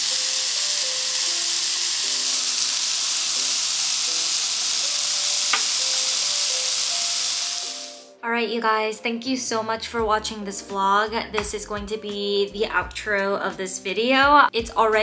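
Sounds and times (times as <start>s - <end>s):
skewers sizzling on grill: 0.0s - 8.2s.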